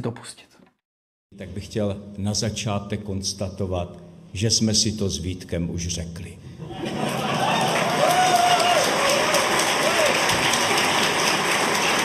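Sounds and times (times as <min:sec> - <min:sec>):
audience applauding: 0:06.6 - 0:12.0
voices rising over clapping: 0:06.7 - 0:12.0.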